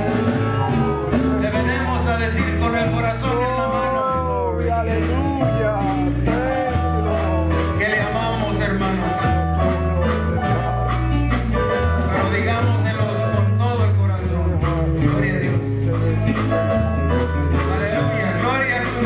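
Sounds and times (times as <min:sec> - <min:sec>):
men singing: 0:00.0 - 0:16.6
drum kit beat: 0:00.0 - 0:19.0
live band playing: 0:00.0 - 0:19.0.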